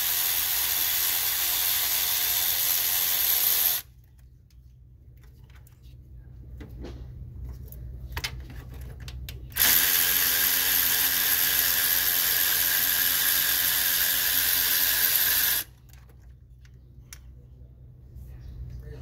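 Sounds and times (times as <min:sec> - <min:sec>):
cordless electric ratchet running: 0:00.0 - 0:03.9, 0:09.6 - 0:15.7.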